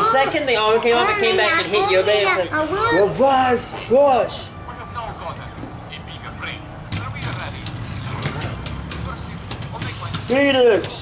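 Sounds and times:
faint voices: 0.0 - 11.0
spinning tops clashing: 6.9 - 11.0.

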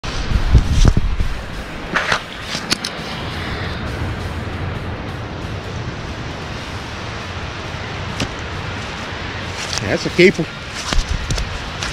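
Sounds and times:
low wind buffeting: 0.0 - 11.9
wind on microphone: 0.0 - 11.9.

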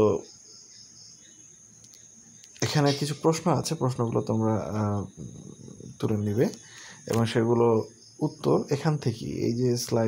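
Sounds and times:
high-pitched insect trill: 0.0 - 10.0.

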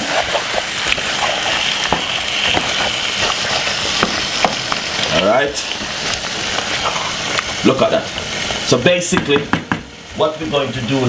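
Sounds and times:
chicken sizzling in a pot: 0.0 - 11.0
wooden spoon knocking pan: 1.9 - 4.9, 9.1 - 9.9.

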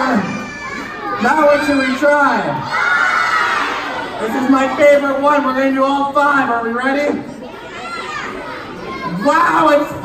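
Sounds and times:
children murmuring and calling out: 0.0 - 6.0, 7.1 - 10.0.

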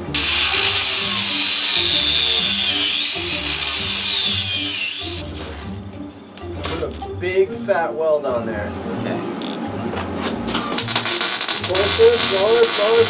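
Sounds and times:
background music: 0.0 - 13.0
angle grinder grinding steel: 0.1 - 5.2, 10.8 - 13.0.

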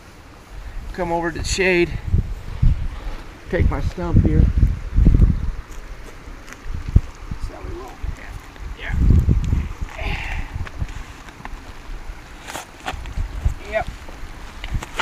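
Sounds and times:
wind gusting on microphone: 0.0 - 15.0.

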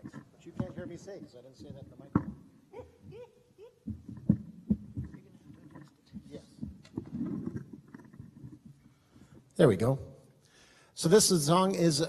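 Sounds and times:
microphone handling thumps: 0.0 - 3.2, 3.8 - 8.9
microphone rubbing and rumbling: 3.8 - 9.4.

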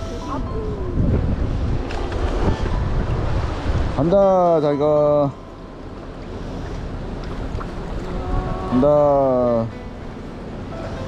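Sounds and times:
wind buffeting microphone: 0.0 - 4.9, 5.8 - 10.6
sea washing on rocky shore: 5.8 - 9.1.

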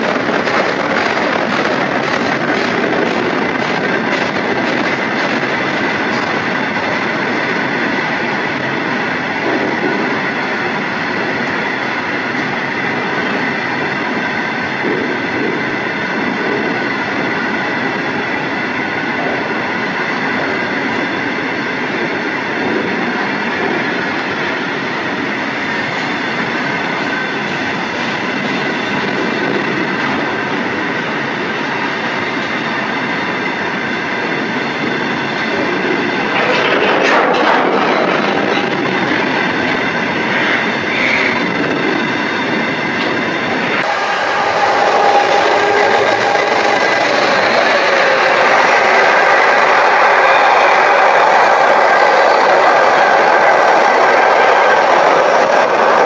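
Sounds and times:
train wheels running on rails: 0.0 - 56.0.

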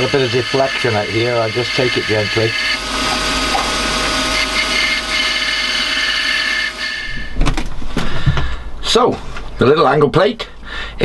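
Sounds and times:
milling machine motor whine: 0.0 - 7.4.

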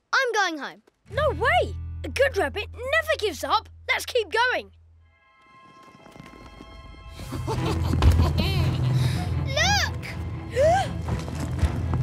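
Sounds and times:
rumble of boulders shifting: 10.2 - 12.0.

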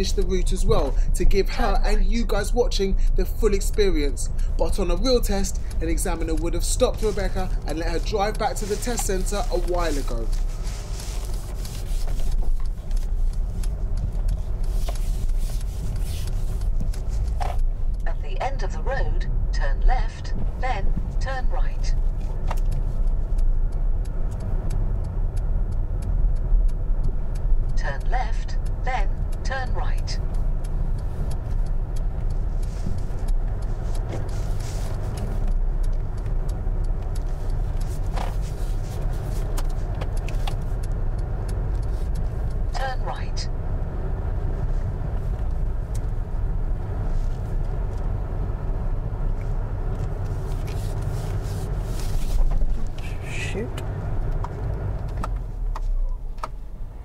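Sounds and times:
car engine and road noise: 0.0 - 57.0.

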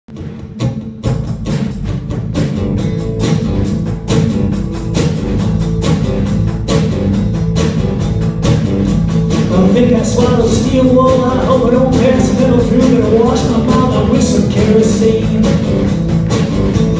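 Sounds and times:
acoustic guitar strumming: 0.1 - 16.9
drum kit steady beat: 0.1 - 16.9.

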